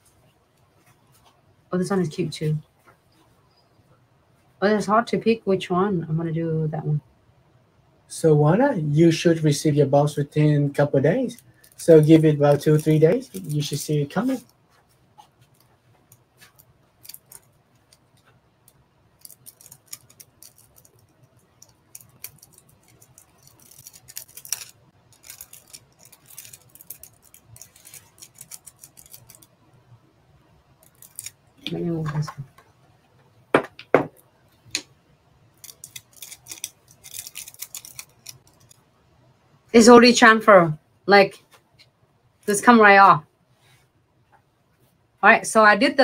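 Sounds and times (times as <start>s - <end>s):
foil crinkling and rustling: 11.4s - 14.5s, 16.5s - 18.2s, 19.2s - 29.5s, 30.8s - 31.4s, 35.6s - 38.8s.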